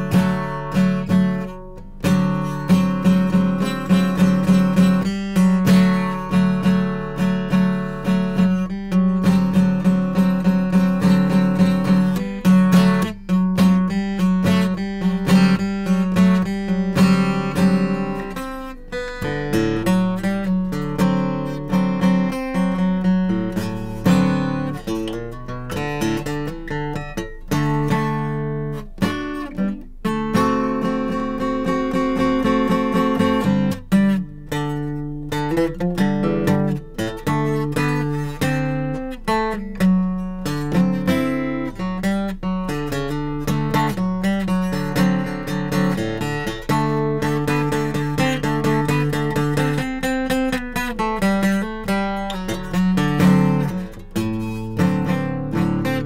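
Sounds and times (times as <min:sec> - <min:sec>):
acoustic guitar strummed: 0:00.0 - 0:56.0.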